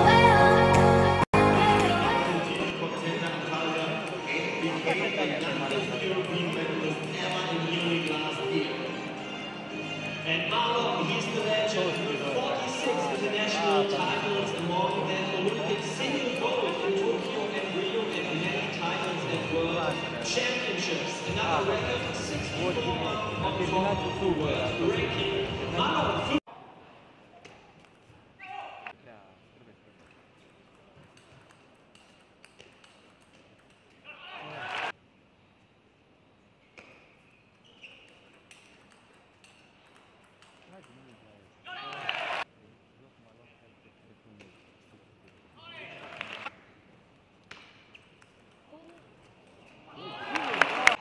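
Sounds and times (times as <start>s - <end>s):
music: 0.0s - 26.4s
crowd shouting and cheering: 50.0s - 51.0s.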